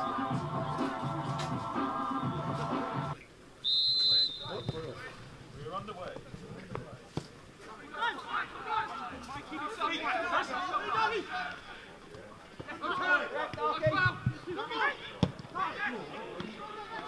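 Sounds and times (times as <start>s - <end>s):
music: 0.0s - 3.2s
referee's whistle blast: 3.6s - 5.0s
players shouting: 7.8s - 11.7s.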